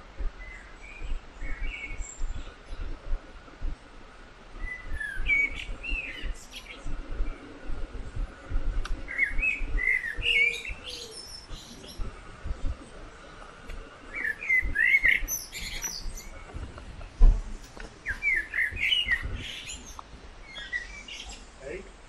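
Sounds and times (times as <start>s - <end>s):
songbird chirping: 0.0s - 22.0s
dull thump: 16.6s - 17.9s.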